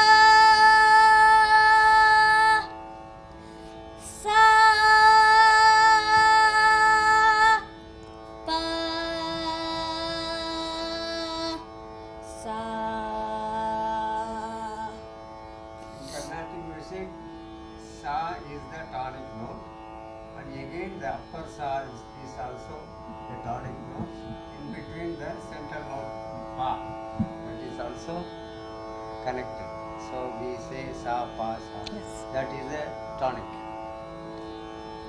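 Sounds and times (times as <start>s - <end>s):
tambura drone: 0.0s - 35.0s
man speaking: 16.0s - 17.2s, 20.4s - 28.3s, 29.2s - 33.6s.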